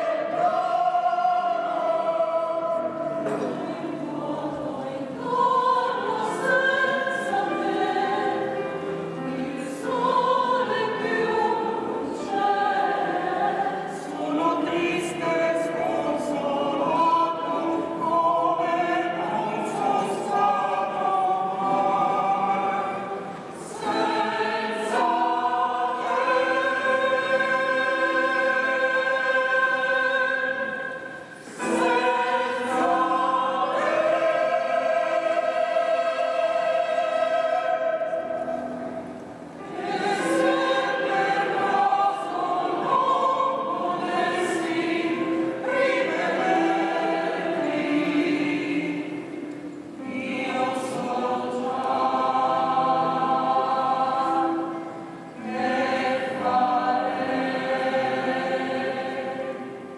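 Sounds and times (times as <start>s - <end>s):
mixed choir singing: 0.0s - 59.9s.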